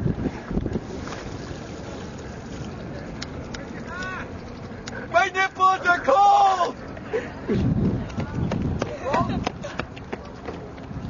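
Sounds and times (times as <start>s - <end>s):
outdoor background noise: 0.0s - 11.0s
wind buffeting microphone: 0.0s - 11.0s.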